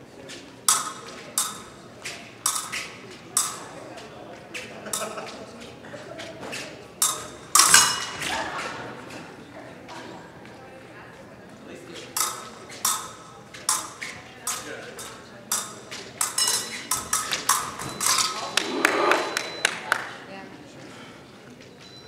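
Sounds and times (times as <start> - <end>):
fencing blades clashing: 0.6 - 3.9, 4.8 - 5.4, 6.5 - 8.8, 12.0 - 19.6
feet striking metal strip: 0.7 - 3.8, 6.5 - 8.3, 12.0 - 19.1.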